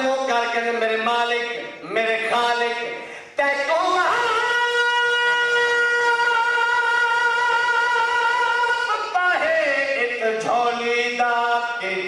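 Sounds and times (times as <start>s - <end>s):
man singing long high note: 1.6s - 12.0s.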